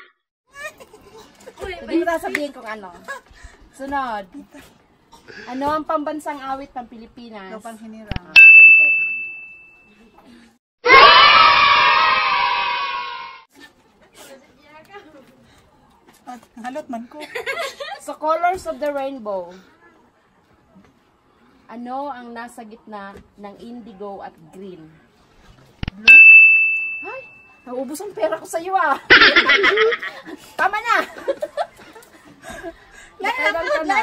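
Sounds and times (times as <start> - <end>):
bright bell-like ding: 8.4 - 9.9, 26.1 - 27.7
chime: 8.4 - 10.0, 26.1 - 27.7
canned crowd cheering: 10.8 - 13.4.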